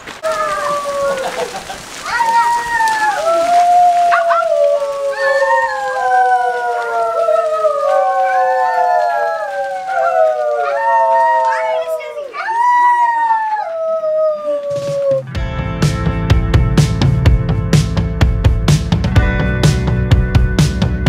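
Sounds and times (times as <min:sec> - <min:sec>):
children howling held notes: 0:00.2 - 0:15.3
music with drum beat: 0:15.2 - 0:21.0.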